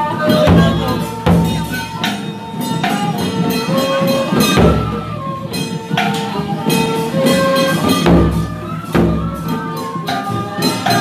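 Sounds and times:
cymbals: 0:00.0 - 0:11.0
wind instrument melody: 0:00.0 - 0:11.0
barrel drum strikes: 0:00.3 - 0:02.2.

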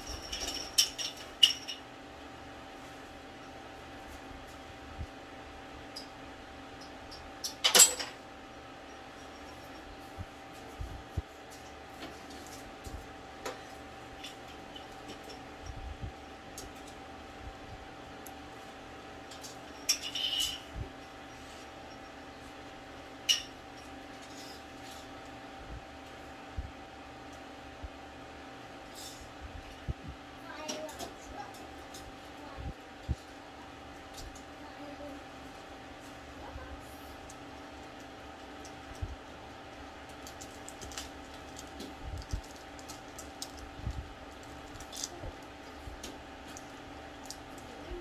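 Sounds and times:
steady low hum: 0:00.0 - 0:48.0
plastic crinkle: 0:40.1 - 0:43.7.

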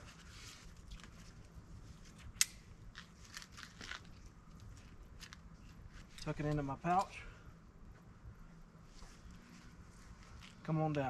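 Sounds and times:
strap rustling: 0:00.0 - 0:07.2, 0:08.6 - 0:11.0
belt hardware clicks: 0:06.1 - 0:07.2.

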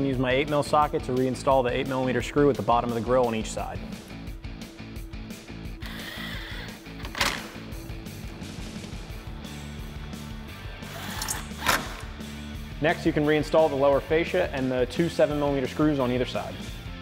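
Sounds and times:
rock music with guitar: 0:03.8 - 0:12.9
cordless ratchet whirring: 0:05.8 - 0:07.3.

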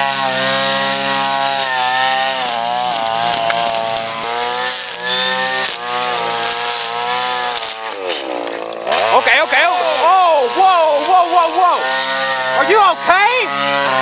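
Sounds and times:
string trimmer engine running: 0:00.0 - 0:14.0.

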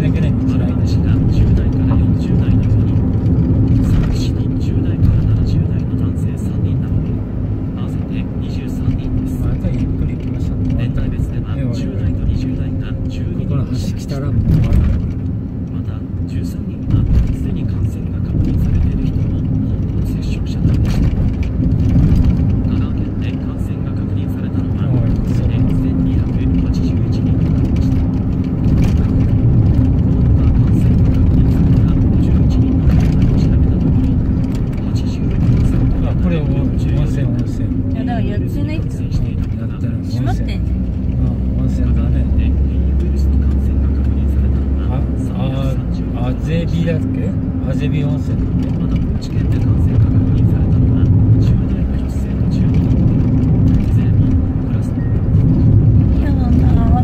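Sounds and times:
road and engine noise in car: 0:00.0 - 0:57.0.

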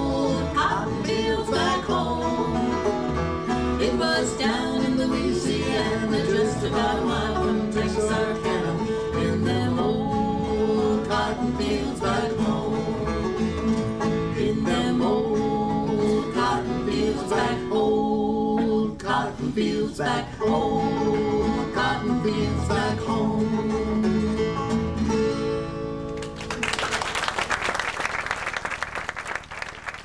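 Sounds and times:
strummed acoustic guitars: 0:00.0 - 0:26.6
picked string notes: 0:00.0 - 0:27.0.

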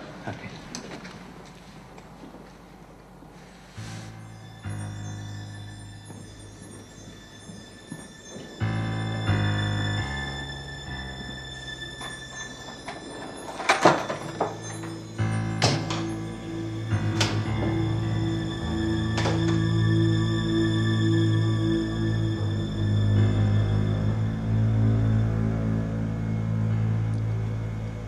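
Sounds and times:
suspenseful film score music: 0:03.9 - 0:28.0.

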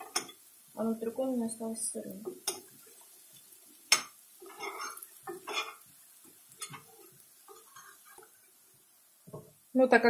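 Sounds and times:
metal spoon scraping a frying pan: 0:03.9 - 0:05.9, 0:06.5 - 0:08.4.

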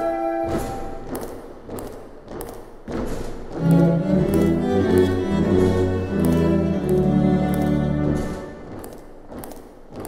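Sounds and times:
steady beat of thumps: 0:00.4 - 0:10.0.

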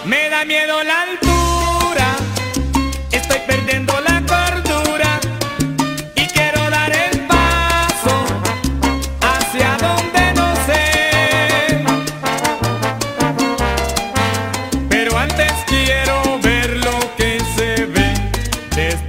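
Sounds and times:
low bass line: 0:01.2 - 0:19.0
salsa band playing: 0:01.2 - 0:19.0
sharp percussion: 0:01.2 - 0:19.0.

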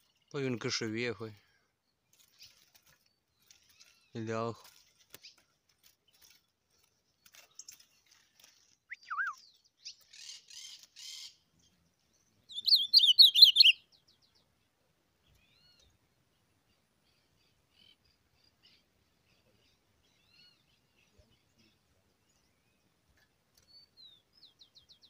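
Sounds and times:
songbird calling and singing: 0:01.4 - 0:25.0.

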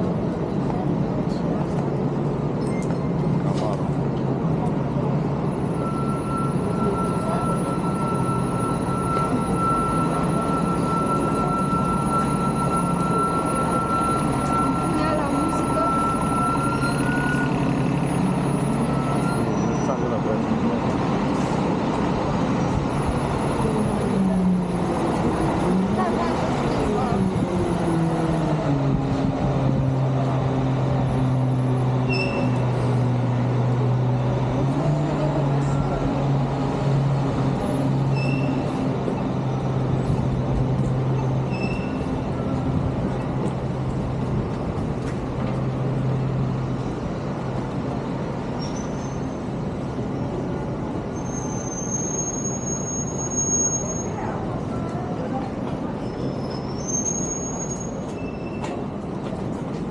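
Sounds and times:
city street traffic: 0:00.0 - 0:59.9
heavy vehicle engine: 0:00.0 - 0:59.9
short high beeps: 0:05.7 - 0:17.6.

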